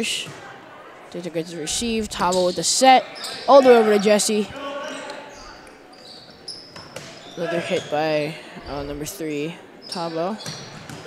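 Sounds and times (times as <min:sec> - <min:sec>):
sneakers squeaking on hardwood: 0:01.6 - 0:11.0.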